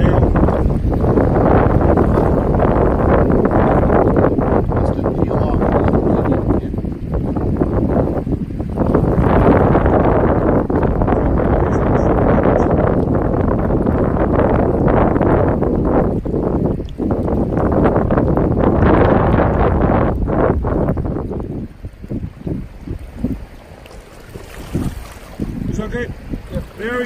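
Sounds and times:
wind buffeting microphone: 0.0s - 27.0s
water around hands: 19.2s - 27.0s.

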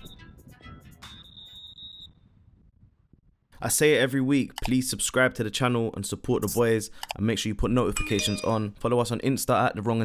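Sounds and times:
referee's whistle: 1.0s - 2.2s.

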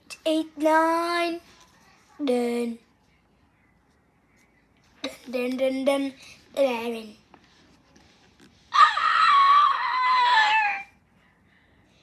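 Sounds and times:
high-pitched scream: 8.7s - 10.9s.

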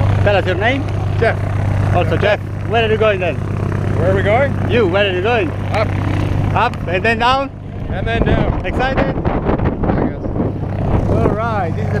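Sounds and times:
low engine drone: 0.0s - 12.0s.

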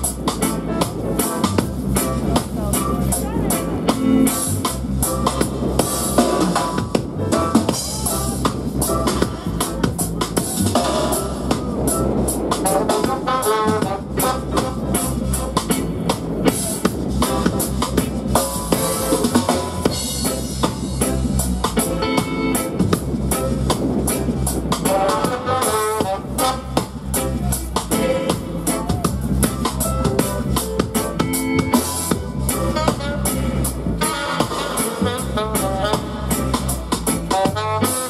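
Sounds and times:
deep bass groove: 0.0s - 38.0s
drum kit with rimshots: 0.0s - 38.0s
keyboard: 0.0s - 38.0s
saxophone and trombone phrases: 0.0s - 38.0s.

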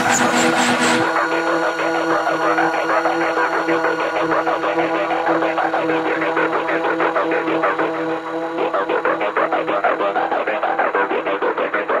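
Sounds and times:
dark electronic music: 0.0s - 11.3s
droning synth: 0.0s - 12.0s.

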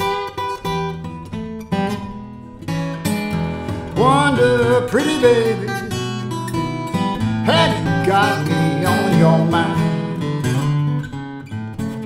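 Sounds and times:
acoustic guitar: 0.0s - 12.0s
person singing: 3.6s - 6.3s, 7.2s - 10.8s.

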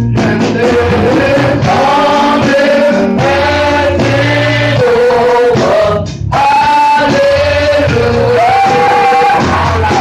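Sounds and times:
gospel singing: 0.0s - 10.0s
live church band: 0.0s - 10.0s
steady bass line: 0.0s - 10.0s.

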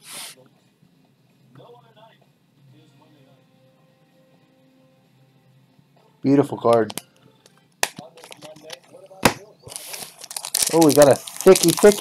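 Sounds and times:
foil wrapper crinkling: 8.2s - 8.8s, 9.7s - 12.0s.

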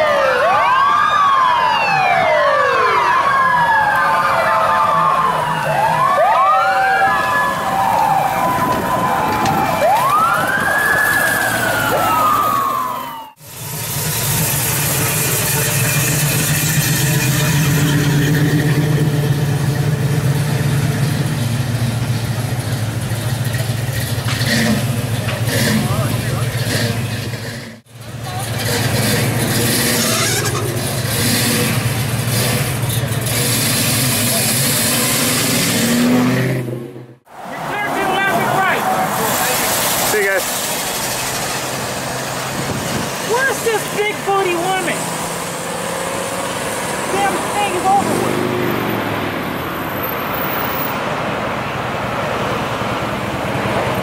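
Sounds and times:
street traffic: 0.0s - 54.0s
car engine rumble: 3.2s - 54.0s
car engine revving: 13.4s - 54.0s
voices: 37.3s - 40.5s, 43.2s - 45.0s, 47.0s - 48.5s.

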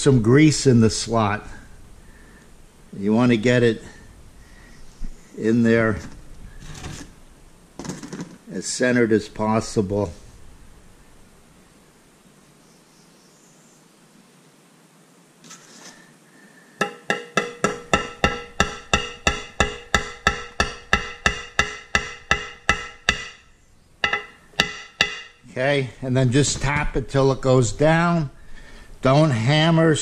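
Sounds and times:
hammer tapping on metal: 16.8s - 25.4s.

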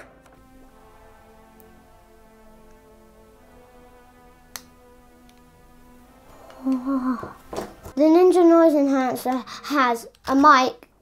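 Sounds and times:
soft background music: 0.0s - 10.8s.

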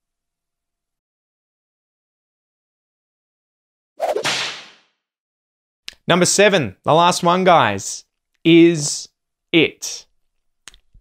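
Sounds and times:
whip-like whoosh: 4.0s - 4.9s.

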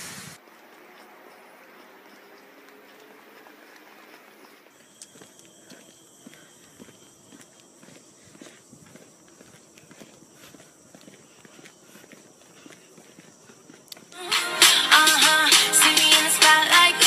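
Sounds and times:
thin high whine: 0.0s - 9.6s, 14.2s - 17.0s
footsteps on paved path: 0.4s - 14.3s.

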